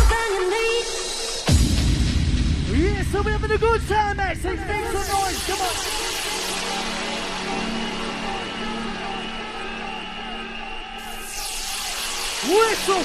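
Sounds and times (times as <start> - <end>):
bouncy pitched synth stabs: 4.6 - 13.0.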